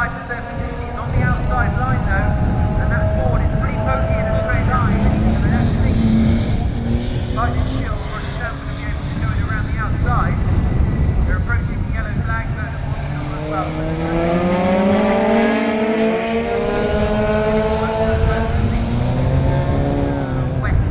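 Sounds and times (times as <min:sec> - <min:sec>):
person talking: 0:00.0 - 0:06.5, 0:07.2 - 0:10.4, 0:11.3 - 0:20.9
race car engines: 0:00.0 - 0:20.9.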